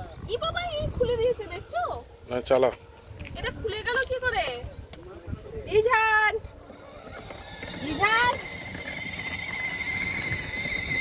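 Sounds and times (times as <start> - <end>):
electric motor whining: 6.7 - 11.0.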